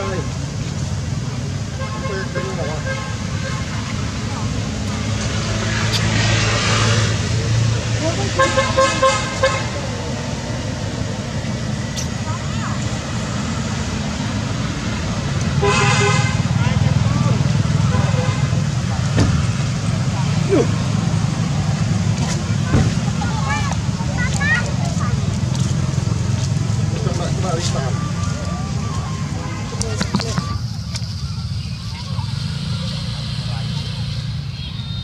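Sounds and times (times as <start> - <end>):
traffic rumble: 0.0 - 35.0
vehicle horn: 8.4 - 9.8, 15.6 - 16.5.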